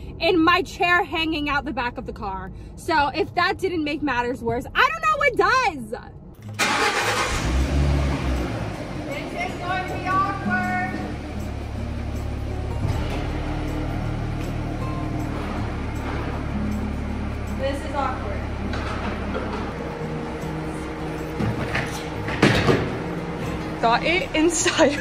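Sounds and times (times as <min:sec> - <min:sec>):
car soft top motor hum: 0:06.6 - 0:25.0.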